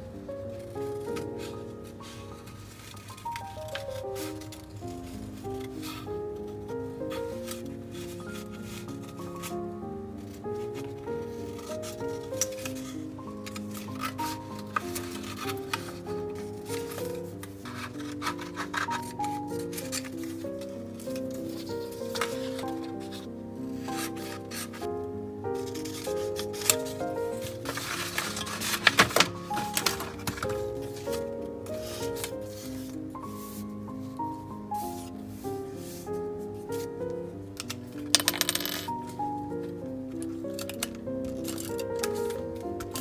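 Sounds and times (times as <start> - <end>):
instrumental background music: 0.0 - 43.0
paper rustling: 0.6 - 24.9, 25.5 - 43.0
scissors cutting paper: 11.4 - 20.4, 21.0 - 24.9, 25.6 - 31.3, 40.5 - 43.0
stationery clattering on desk: 26.6 - 31.1, 37.7 - 39.0.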